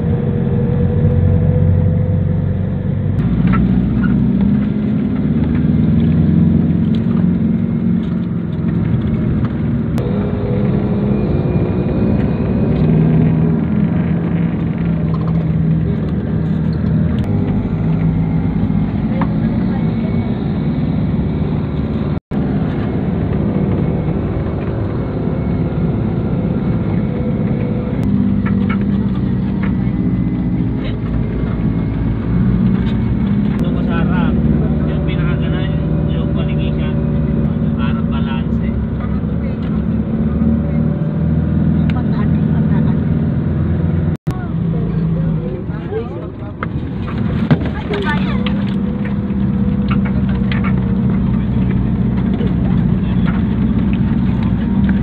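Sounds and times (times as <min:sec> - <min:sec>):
road noise: 0:00.0 - 0:55.0
vehicle engine running: 0:00.0 - 0:55.0.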